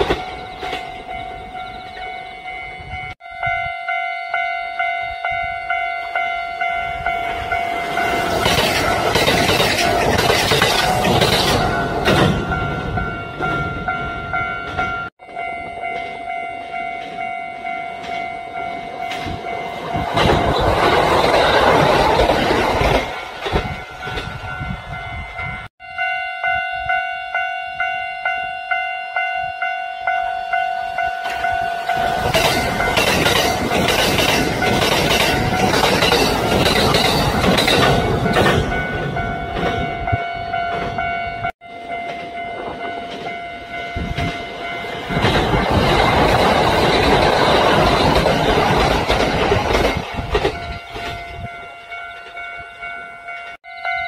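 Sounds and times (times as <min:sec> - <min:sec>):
train wheels clacking on rail joints: 0:07.2 - 0:13.9, 0:19.0 - 0:24.6, 0:31.2 - 0:41.2, 0:42.0 - 0:51.5.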